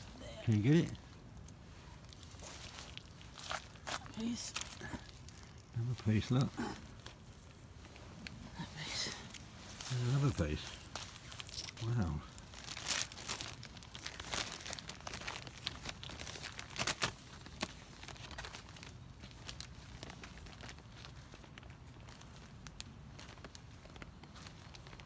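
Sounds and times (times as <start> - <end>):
plastic bag crinkling: 0.0 - 8.4, 9.0 - 25.0.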